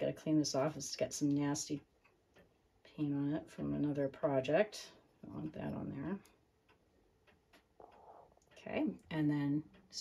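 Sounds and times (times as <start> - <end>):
faint irregular ticks: 0.0 - 10.0.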